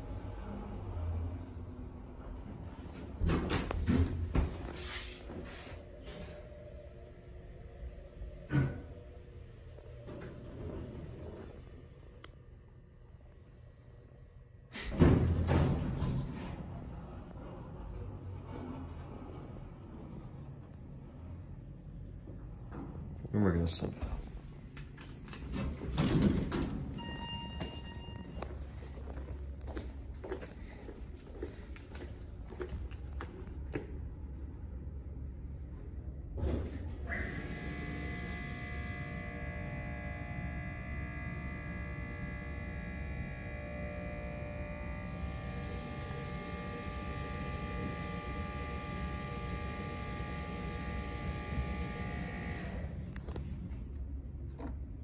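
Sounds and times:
elevator hum: 0.0s - 55.0s
elevator clunks and rattles: 2.3s - 4.7s, 14.8s - 20.6s, 24.0s - 28.9s
electronic elevator beep: 27.0s - 28.9s
footsteps on hard floor: 27.6s - 33.9s.

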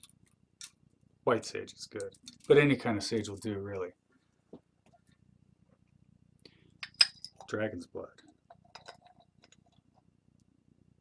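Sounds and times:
glass jar clicks: 6.8s - 7.5s.

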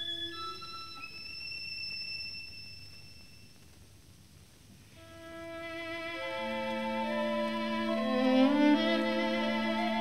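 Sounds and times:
recording hiss and rumble: 0.0s - 10.0s.

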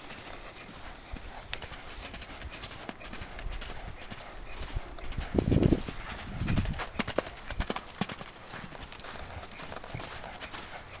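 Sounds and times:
horse hoofbeats on soft sand: 0.0s - 11.0s.

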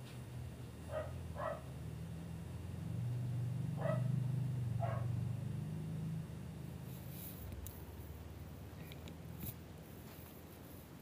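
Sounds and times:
steady low hum: 0.0s - 11.0s
dog barking: 0.9s - 1.7s, 3.8s - 4.2s, 4.8s - 5.2s.

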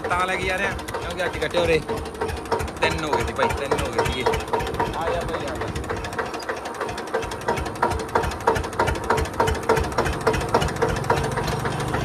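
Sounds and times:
tractor engine knocking: 0.0s - 12.0s.

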